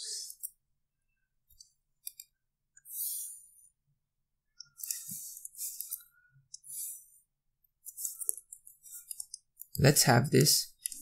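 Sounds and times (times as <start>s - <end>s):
computer mouse clicks: 1.5s - 2.9s, 4.6s - 6.7s, 7.8s - 9.8s, 10.8s - 11.0s
man speaking: 9.8s - 10.8s.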